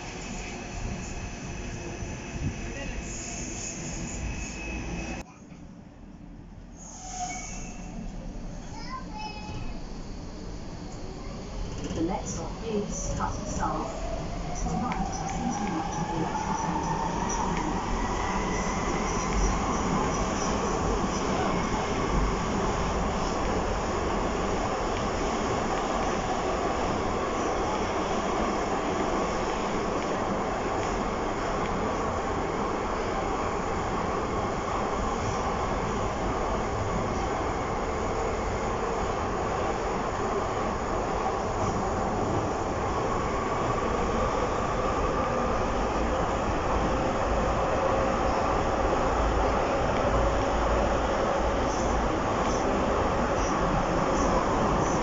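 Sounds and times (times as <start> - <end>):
train wheels rumbling on track: 6.8 - 55.0.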